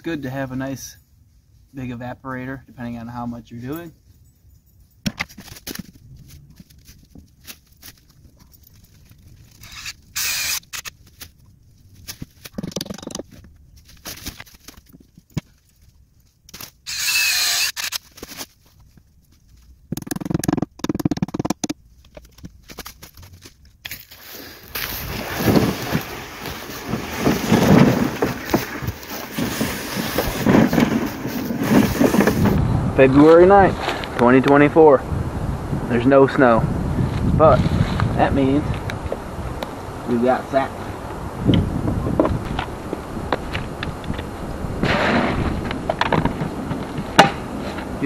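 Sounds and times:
plastic buckets clicking: 12.5 - 13.4, 19.9 - 22.5, 24.8 - 32.5
footsteps crunching dry leaves: 22.6 - 32.1.

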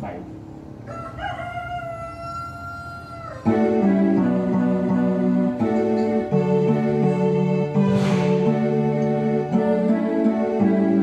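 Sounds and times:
organ playing sustained chords: 3.4 - 11.0.

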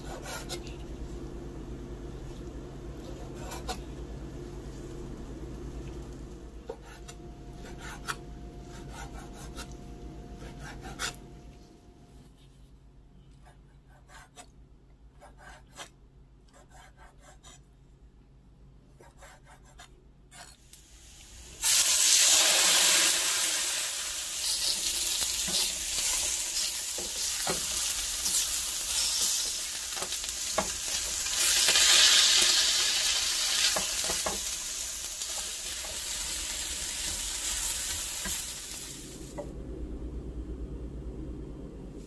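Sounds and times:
meat frying in oil: 20.8 - 39.4.

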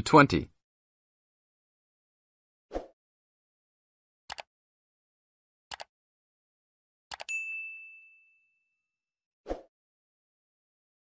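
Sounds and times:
bright bell ding: 7.3 - 8.8.

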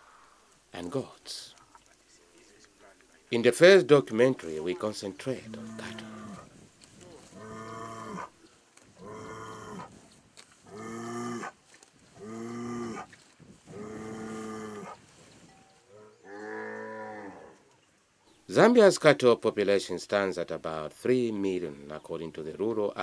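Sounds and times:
cattle mooing: 5.4 - 6.5, 7.2 - 8.3, 9.0 - 9.9, 13.7 - 15.0.

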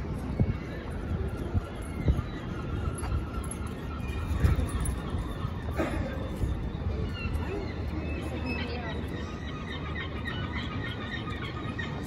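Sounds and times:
birds chirping: 0.0 - 12.0
busy street hum: 0.0 - 12.0.

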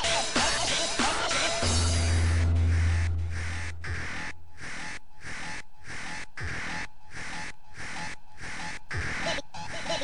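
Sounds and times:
harsh rhythmic noise texture: 0.0 - 10.0
deep bass note: 1.6 - 4.4.

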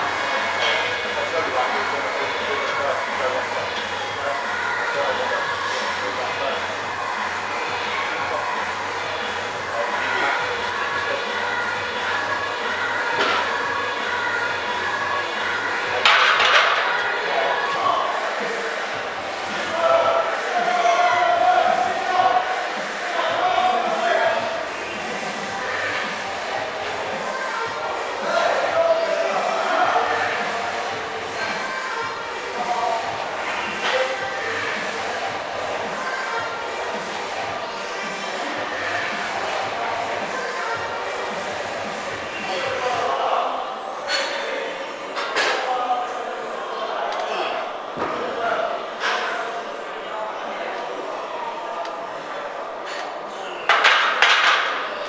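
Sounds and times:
gym background noise: 0.0 - 55.0.

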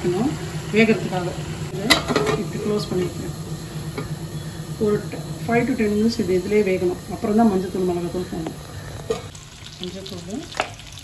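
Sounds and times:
slices sizzling in oil: 0.0 - 11.0.

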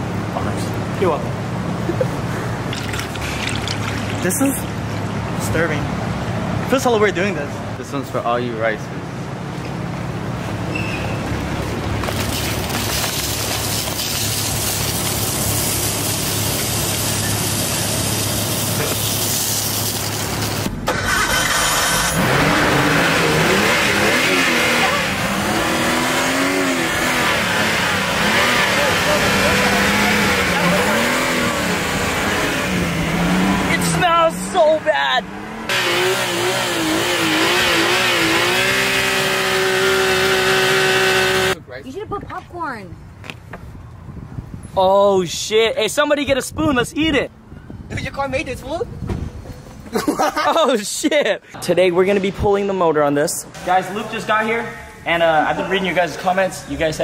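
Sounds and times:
car engine revving: 14.6 - 41.6.

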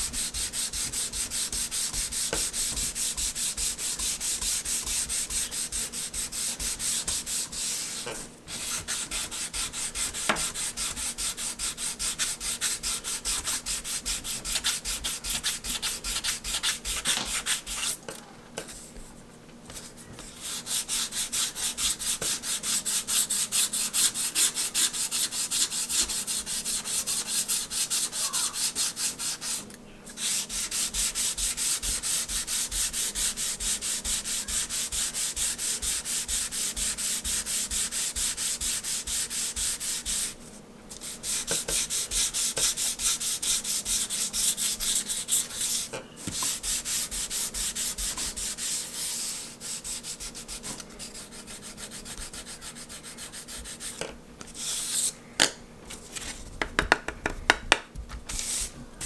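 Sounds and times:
sanding block rubbing wood: 0.0 - 18.0, 20.3 - 29.6, 30.2 - 40.4, 41.0 - 54.0.

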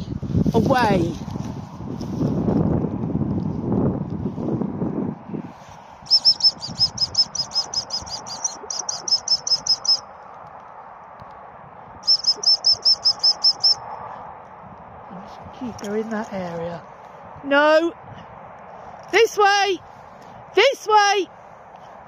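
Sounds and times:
rustling noise: 0.0 - 8.4
songbird singing: 6.0 - 10.2, 12.0 - 14.1.

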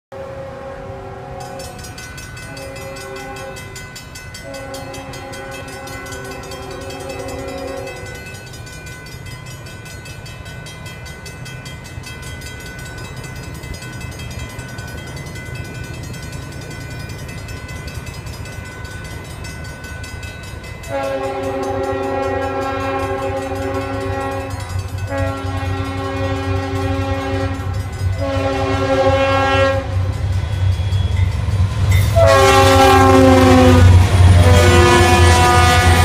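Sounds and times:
locomotive air horn blasts: 0.1 - 1.9, 2.5 - 3.8, 4.4 - 8.2, 20.9 - 30.1, 32.1 - 36.0
train rumble: 0.2 - 36.0
crossing warning bell ringing: 0.8 - 36.0.

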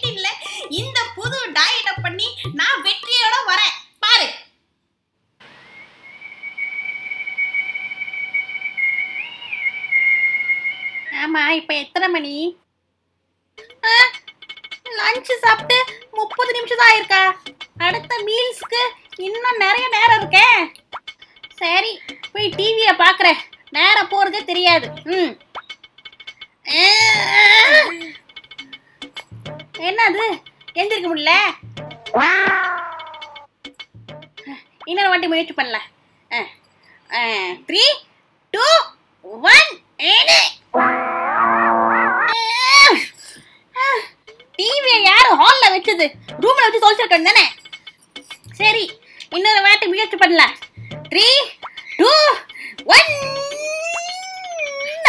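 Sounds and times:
woman's high whining cry: 53.0 - 55.0.

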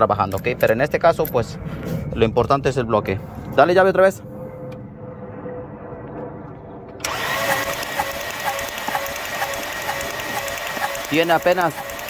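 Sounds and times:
engine cranked by starter: 7.0 - 12.0.

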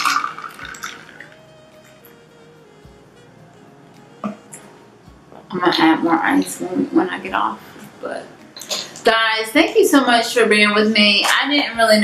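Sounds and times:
liquid pouring into glass of ice: 0.0 - 1.4.

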